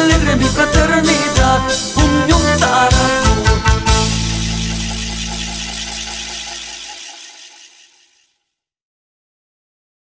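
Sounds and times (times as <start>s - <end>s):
cymbal crash ringing: 4.0s - 8.3s.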